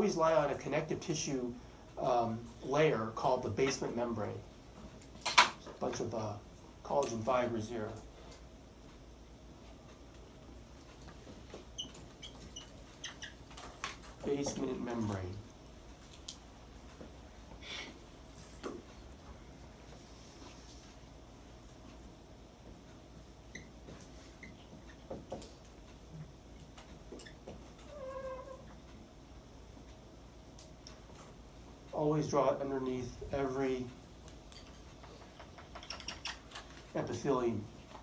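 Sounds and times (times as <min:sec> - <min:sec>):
marker squeaking on a whiteboard: 0:11.5 - 0:14.1, 0:23.5 - 0:25.3, 0:27.1 - 0:28.8, 0:35.0 - 0:36.7.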